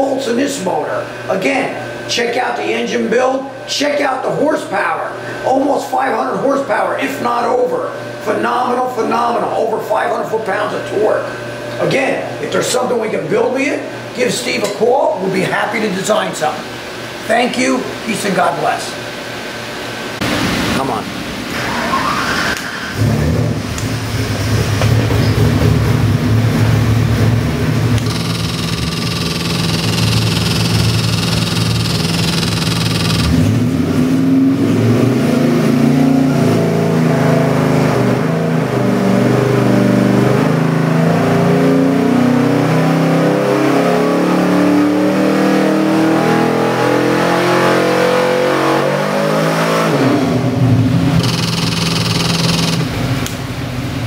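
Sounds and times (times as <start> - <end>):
engine revving under load: 21.5 - 54.0.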